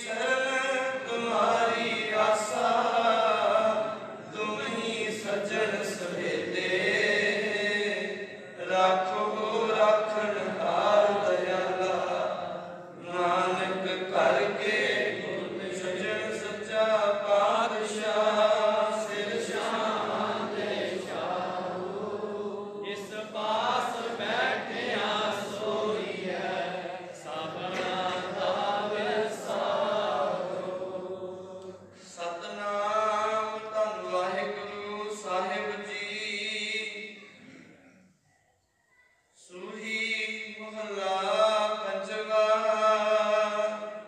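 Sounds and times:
man chanting a prayer: 0.0s - 20.0s, 22.4s - 26.1s, 32.0s - 37.4s, 39.4s - 44.0s.

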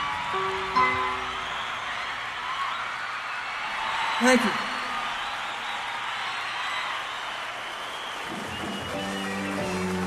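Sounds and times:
audience applause: 0.0s - 10.0s
live band playing chords: 8.6s - 10.0s.

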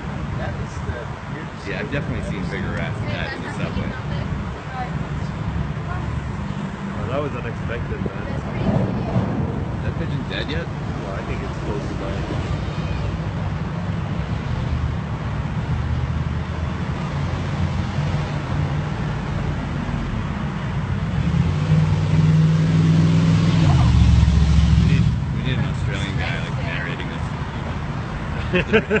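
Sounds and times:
vehicle engine humming: 0.0s - 29.0s.

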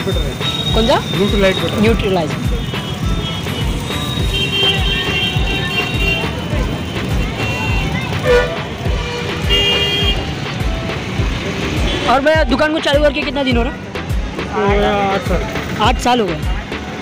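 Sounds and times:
vehicle horns tooting: 0.0s - 10.4s, 11.7s - 12.4s
music with thumping beat: 0.0s - 17.0s
traffic: 0.0s - 17.0s.

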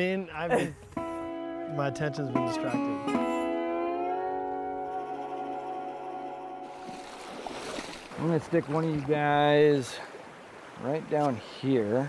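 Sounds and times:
guitar chord: 0.8s - 7.2s
river water rushing: 5.0s - 11.7s.

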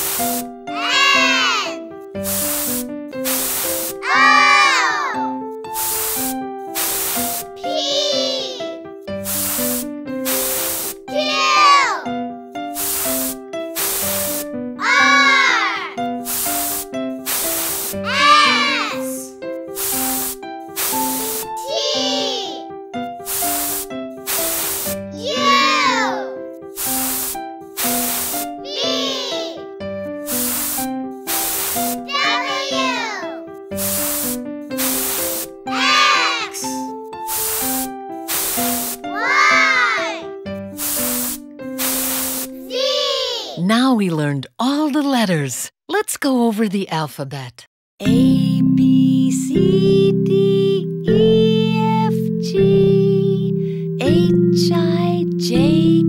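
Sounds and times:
hissing bursts of air: 0.0s - 1.6s, 2.2s - 4.9s, 5.7s - 11.8s, 12.6s - 22.4s, 23.2s - 26.1s, 26.7s - 29.6s, 30.3s - 33.1s, 33.7s - 42.7s
bouncy cartoon music: 0.1s - 43.4s, 48.0s - 56.0s
children's song: 0.7s - 1.9s, 4.0s - 5.4s, 7.6s - 8.8s, 10.4s - 12.1s, 14.2s - 16.0s, 18.0s - 19.4s, 20.9s - 22.7s, 25.0s - 26.4s, 28.5s - 29.6s, 31.3s - 33.5s, 35.6s - 37.0s, 39.1s - 40.3s, 42.6s - 43.6s, 48.0s - 56.0s.

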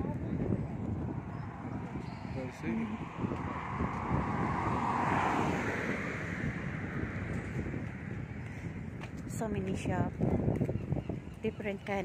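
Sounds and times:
wind rumbling on microphone: 0.0s - 12.0s
car driving past: 1.4s - 7.8s.

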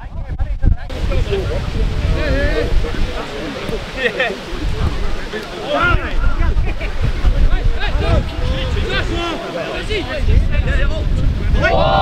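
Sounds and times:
wind buffeting microphone: 0.0s - 12.0s
voices shouting and calling: 0.9s - 12.0s.

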